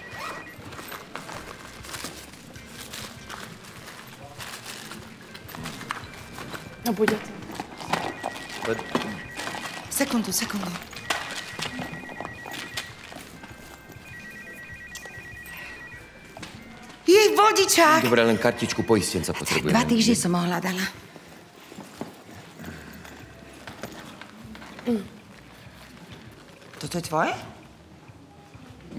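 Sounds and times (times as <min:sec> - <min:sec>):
faint steady background noise: 0:00.0 - 0:28.9
items clicking in handbag: 0:00.2 - 0:14.0.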